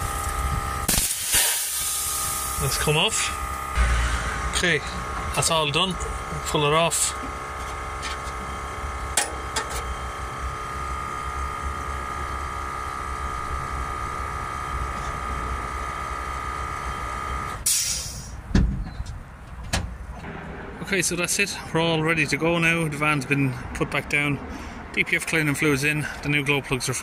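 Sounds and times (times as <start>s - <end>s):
machine rumbling with steady tone: 0.0s - 25.0s.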